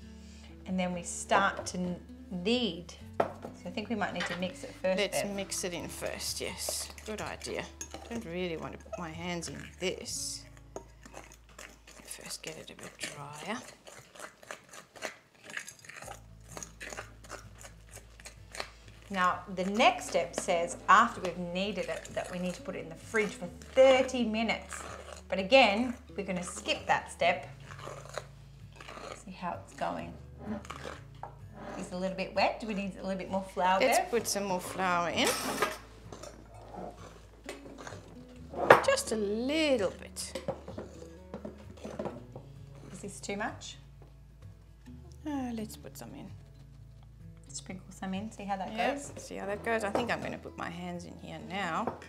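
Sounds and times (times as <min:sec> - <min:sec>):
kitchenware taps and clinks: 0:04.2 - 0:04.5
utensil scraping glass bowl: 0:04.6 - 0:32.8, 0:33.7 - 0:39.2.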